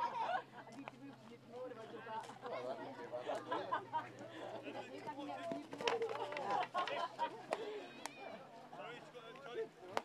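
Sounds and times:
people calling and chattering: 0:00.0 - 0:10.0.

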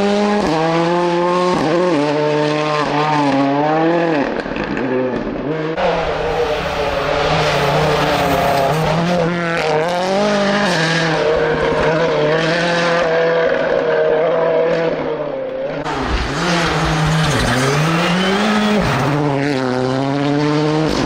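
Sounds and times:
rally car engine at high revs: 0:00.0 - 0:21.0.

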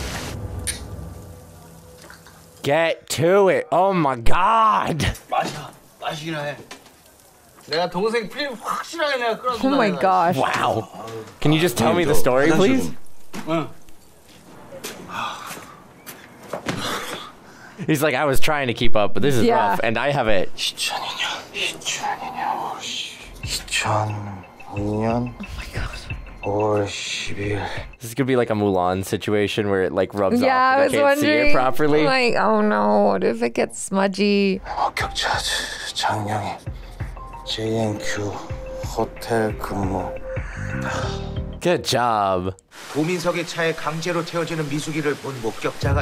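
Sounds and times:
rushing water hiss: 0:00.0 - 0:02.7, 0:04.9 - 0:09.4, 0:42.7 - 0:46.0
man talking: 0:02.6 - 0:06.6, 0:07.6 - 0:13.8, 0:17.8 - 0:33.4, 0:37.4 - 0:40.2, 0:40.9 - 0:46.0
person whispering: 0:20.8 - 0:23.2.

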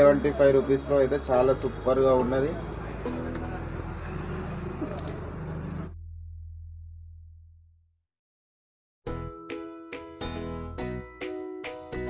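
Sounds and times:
background murmur: 0:00.0 - 0:05.9
low hum: 0:03.2 - 0:07.9.

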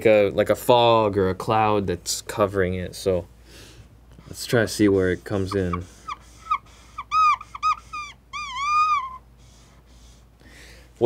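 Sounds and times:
marker squeaking on a whiteboard: 0:04.9 - 0:09.6.

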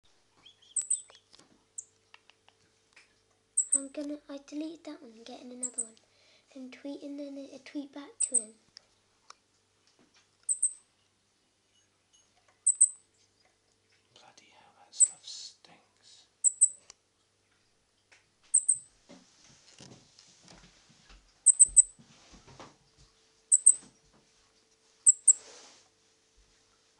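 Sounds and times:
small bird chirping: 0:00.4 - 0:02.5, 0:03.6 - 0:03.9, 0:05.6 - 0:06.0, 0:08.2 - 0:08.6, 0:10.4 - 0:10.9, 0:12.6 - 0:13.2, 0:15.0 - 0:15.2, 0:16.4 - 0:16.9, 0:18.5 - 0:18.9, 0:21.4 - 0:22.0, 0:23.5 - 0:23.9, 0:25.0 - 0:25.4
faint rustling: 0:19.0 - 0:26.9.

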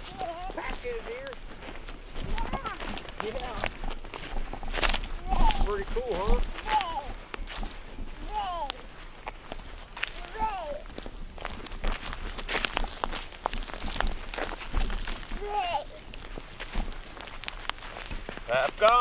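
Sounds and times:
footsteps crunching dry grass: 0:00.0 - 0:19.0.

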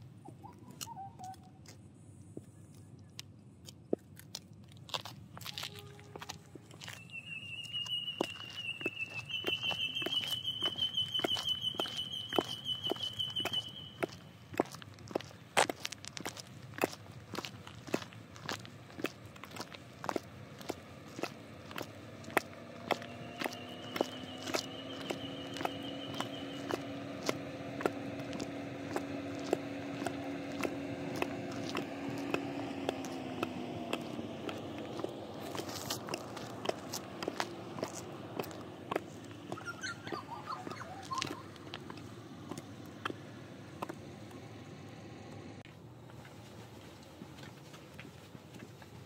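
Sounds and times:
high squeaky chirps: 0:00.2 - 0:01.6, 0:06.8 - 0:14.3, 0:22.9 - 0:27.0, 0:39.1 - 0:41.7
heel footsteps on concrete: 0:01.2 - 0:39.9, 0:40.6 - 0:44.1.

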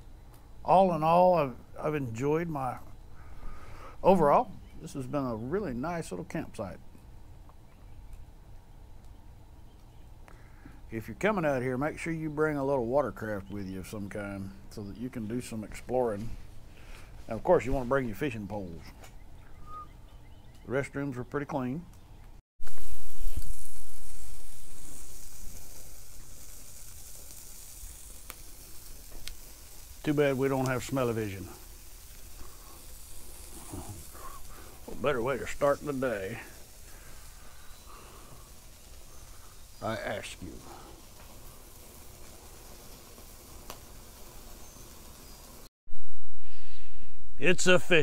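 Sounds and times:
meat sizzling on a grill: 0:00.0 - 0:06.7, 0:22.6 - 0:45.7
faint even hiss: 0:00.0 - 0:19.9, 0:22.6 - 0:48.0
pop from grill: 0:22.6 - 0:37.3, 0:41.0 - 0:45.3.

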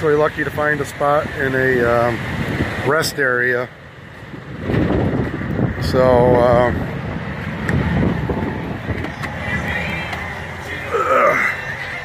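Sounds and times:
wind buffeting truck cab: 0:00.0 - 0:12.0.

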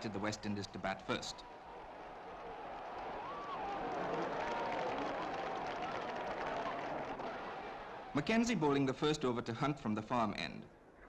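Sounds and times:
crowd cheering and shouting: 0:00.0 - 0:08.2.

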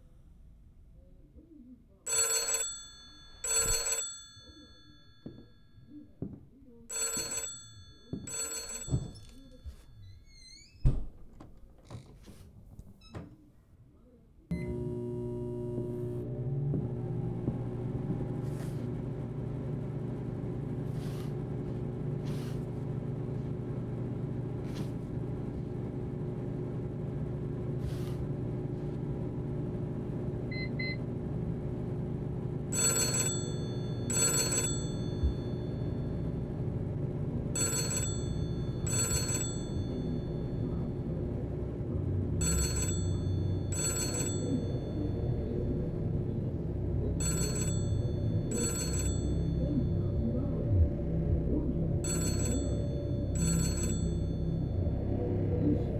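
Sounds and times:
telephone bell ringing: 0:02.1 - 0:10.3, 0:32.7 - 0:36.6, 0:37.6 - 0:41.2, 0:42.4 - 0:46.2, 0:47.2 - 0:50.3, 0:52.0 - 0:55.0
steady low hum: 0:14.5 - 0:55.9.

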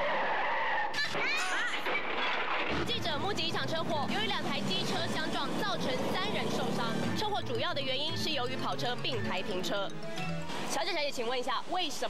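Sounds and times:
scooter tyres screeching: 0:00.0 - 0:03.1.

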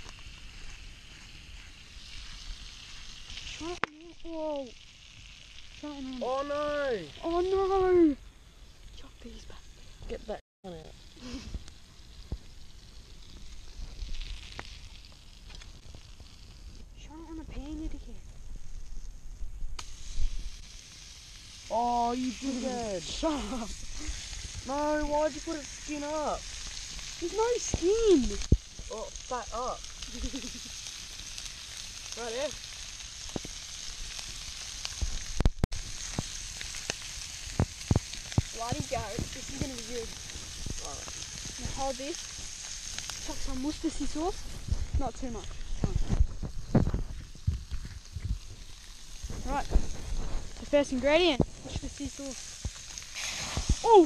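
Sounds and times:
campfire crackling: 0:00.0 - 0:54.0
meat sizzling in a frying pan: 0:00.0 - 0:54.0
sharp pops of fire: 0:00.0 - 0:54.0
soft hiss: 0:00.0 - 0:54.0.

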